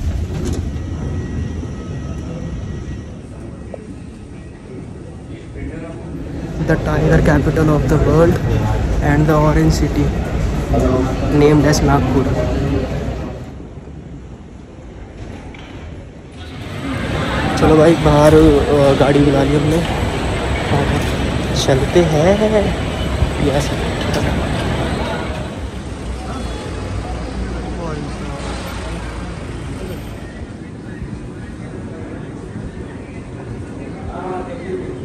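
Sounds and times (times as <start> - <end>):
airport terminal rumble: 0.0 - 35.0
indistinct background voices: 1.9 - 35.0.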